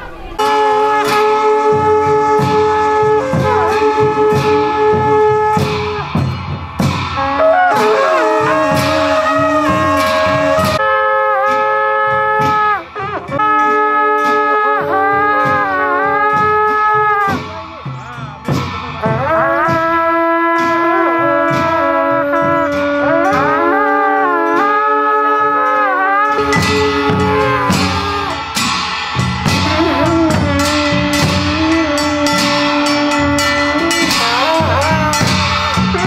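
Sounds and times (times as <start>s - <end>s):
drum strikes: 0.0s - 10.8s, 11.4s - 24.6s, 26.3s - 36.0s
wind instruments sliding notes: 0.0s - 36.0s.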